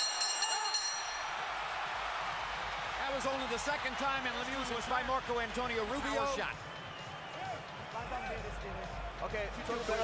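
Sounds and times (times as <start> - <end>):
boxing ring bell ringing: 0.0 - 1.4
arena crowd noise: 0.0 - 10.0.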